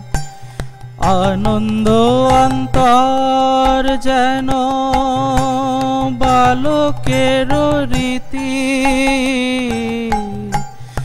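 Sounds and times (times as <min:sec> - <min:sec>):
harmonium: 0:00.0 - 0:11.0
men singing devotional song: 0:01.0 - 0:10.5.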